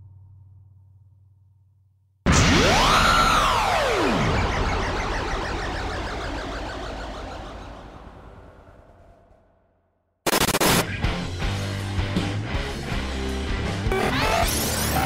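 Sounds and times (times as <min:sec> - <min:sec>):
loud sudden burst: 0:02.3 - 0:09.4, 0:10.3 - 0:10.8
rising swell transition effect: 0:02.8 - 0:09.4.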